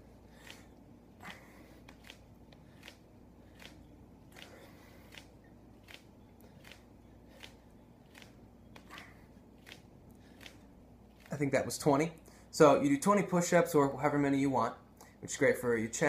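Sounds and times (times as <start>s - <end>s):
man breathing rhythmically: 0.0s - 11.4s, 12.2s - 12.6s
low room hum: 0.0s - 16.0s.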